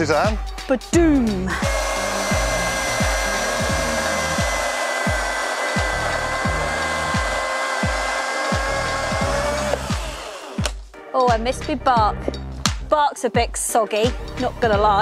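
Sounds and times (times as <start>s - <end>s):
music with thumping beat: 0.0s - 15.0s
chainsaw cutting log: 1.5s - 10.8s.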